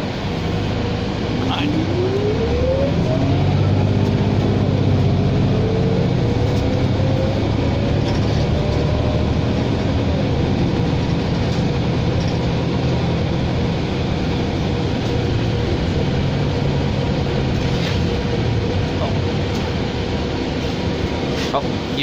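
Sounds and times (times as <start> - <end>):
bus engine drone: 0.0 - 22.0
rising and falling whine: 0.0 - 22.0.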